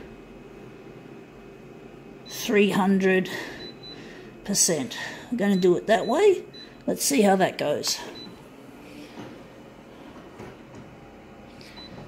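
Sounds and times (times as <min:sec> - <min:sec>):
copier scanner running: 0:00.0 - 0:12.0.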